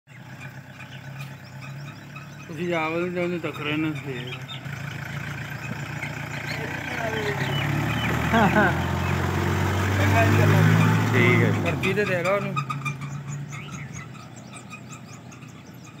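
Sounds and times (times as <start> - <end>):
pickup truck engine humming: 0.1 - 16.0
small animals calling: 0.1 - 16.0.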